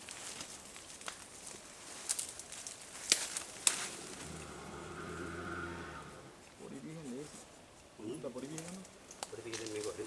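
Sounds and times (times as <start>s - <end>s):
clicks of leaves handled: 0.0s - 4.5s, 6.5s - 10.0s.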